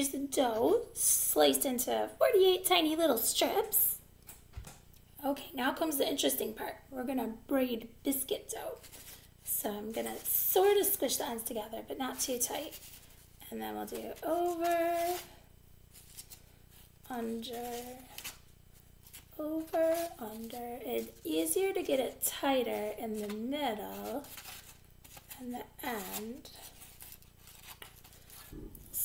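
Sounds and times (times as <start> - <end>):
soft low thud: 28.5 - 29.0.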